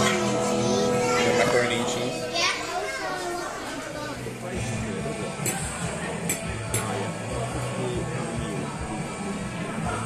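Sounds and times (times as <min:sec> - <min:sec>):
child talking: 0:00.0 - 0:04.2
faint background music: 0:00.0 - 0:10.0.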